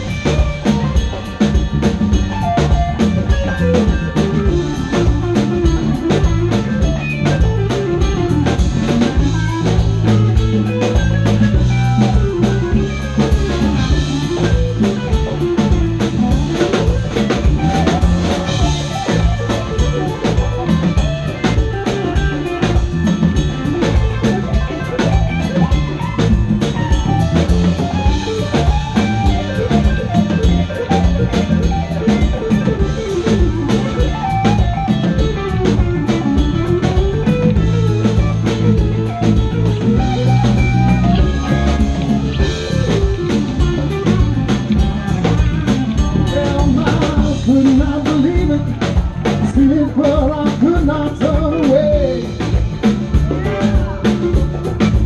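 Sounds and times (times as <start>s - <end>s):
live band playing instrumental: 0.0s - 55.0s.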